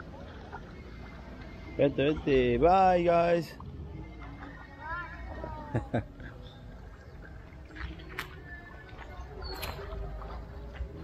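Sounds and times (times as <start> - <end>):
person laughing: 5.6 - 6.4.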